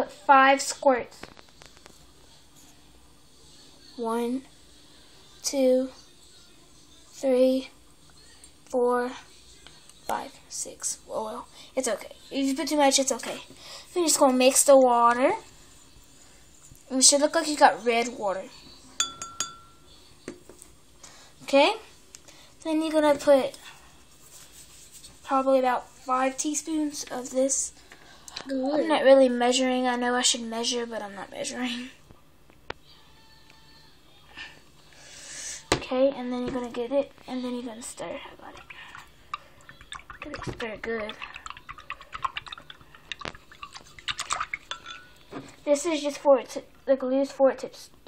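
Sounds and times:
pencil clinking against glass: 0:19.0 - 0:19.8, 0:41.4 - 0:45.2
pencil tapping glass cup: 0:19.0 - 0:19.8.

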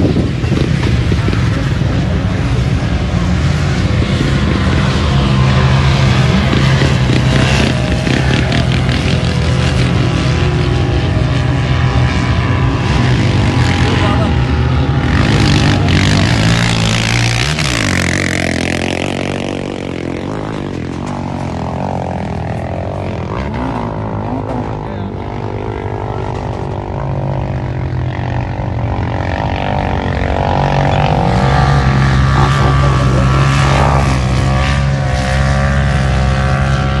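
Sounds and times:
suv engines running hard: 0:00.0 - 0:37.0
vehicle passing close by: 0:00.0 - 0:37.0.

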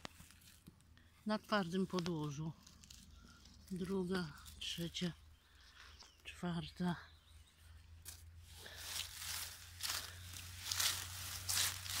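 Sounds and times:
rustling plants and dry leaves: 0:00.0 - 0:12.0.

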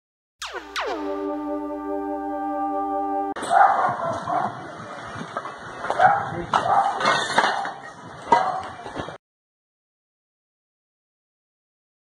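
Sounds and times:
held synthesizer chord: 0:00.4 - 0:03.4.

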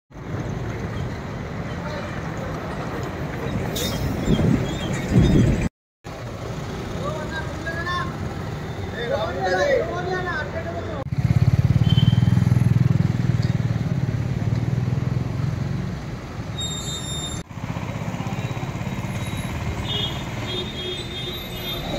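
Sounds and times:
vehicle engine rumbling: 0:00.1 - 0:09.2, 0:10.2 - 0:21.9
street traffic: 0:00.1 - 0:21.9.

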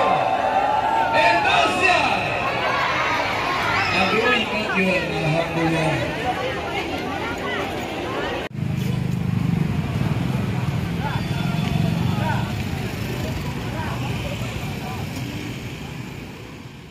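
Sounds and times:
motorcycle and scooter engines running: 0:08.5 - 0:16.9.

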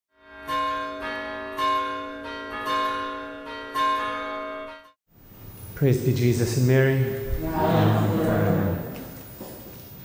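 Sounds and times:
church bells pealing: 0:00.2 - 0:05.0, 0:06.0 - 0:09.2.

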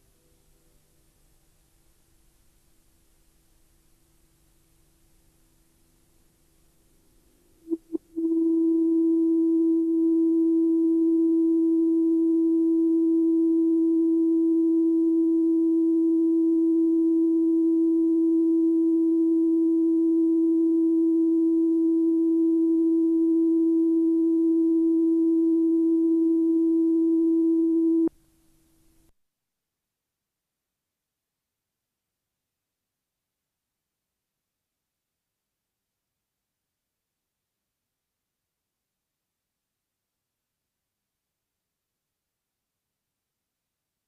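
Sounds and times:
electronic test tone: 0:07.7 - 0:28.1.

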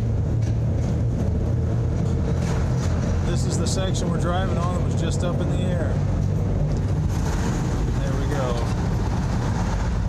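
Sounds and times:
vehicle tyres and engine rumble: 0:00.0 - 0:10.0.

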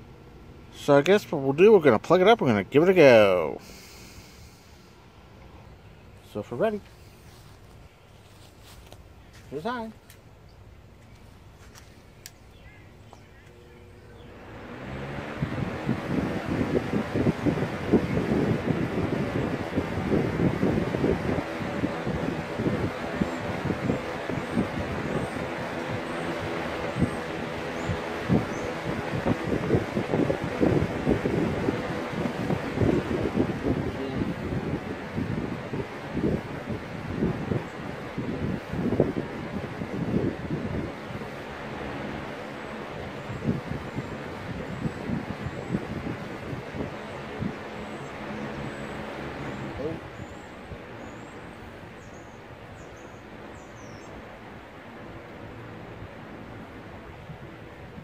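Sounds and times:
box fan running: 0:00.0 - 0:58.0.

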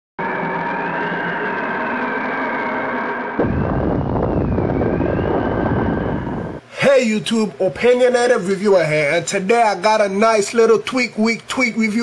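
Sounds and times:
sudden deep rumble: 0:00.2 - 0:06.6
synthesized drone with wavering tone: 0:00.2 - 0:06.6.

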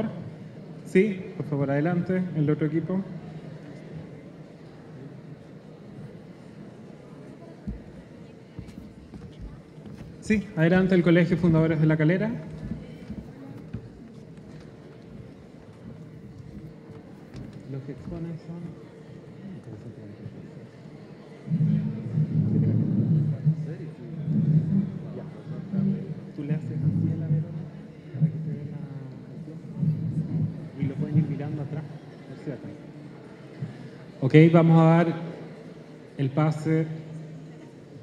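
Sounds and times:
murmur of voices: 0:00.0 - 0:38.0
footsteps on stage: 0:07.6 - 0:11.8, 0:12.4 - 0:18.4.

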